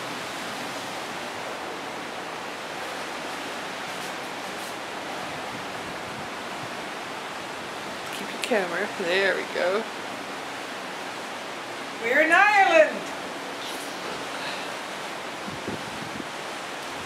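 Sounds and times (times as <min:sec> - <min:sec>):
sea water rushing past ship: 0:00.0 - 0:17.0.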